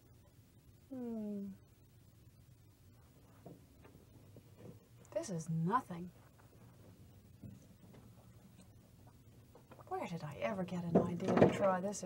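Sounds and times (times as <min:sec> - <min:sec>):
low steady hum: 0:00.0 - 0:12.0
woman's voice: 0:05.1 - 0:06.1, 0:09.9 - 0:12.0.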